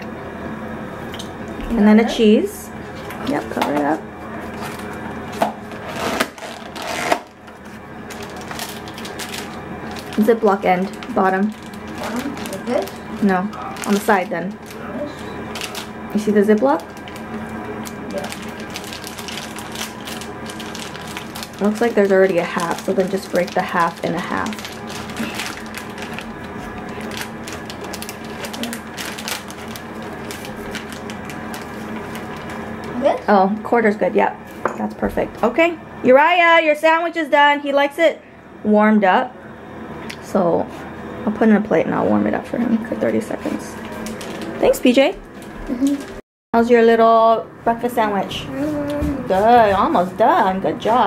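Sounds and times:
plastic packaging crinkling: 0:05.6 - 0:33.0, 0:43.8 - 0:46.2.

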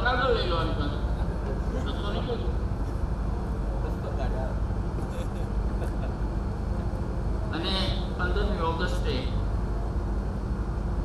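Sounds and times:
low rumble of hall room noise: 0:00.0 - 0:11.0.

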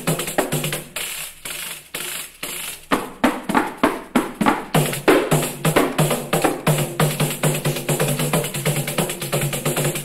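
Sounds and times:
pandeiro: 0:00.0 - 0:10.0.

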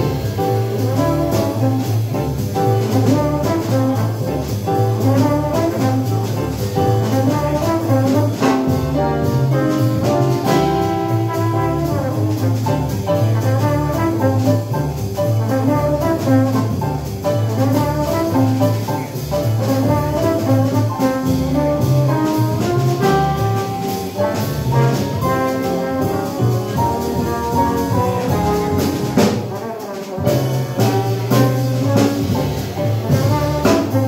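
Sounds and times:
drum kit with cymbals: 0:00.0 - 0:34.0
piano: 0:00.0 - 0:34.0
trombone melody: 0:00.0 - 0:34.0
walking double bass: 0:00.0 - 0:34.0.

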